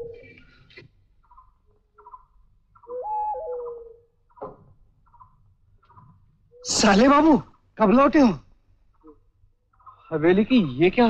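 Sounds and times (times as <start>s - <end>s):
hollow hooting call: 0.0s - 0.6s, 2.8s - 4.2s.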